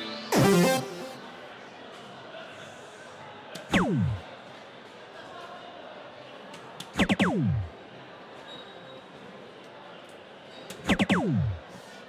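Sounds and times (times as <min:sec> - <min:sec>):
falling electronic tones: 0:03.7 - 0:04.2, 0:07.0 - 0:07.7, 0:10.9 - 0:11.6.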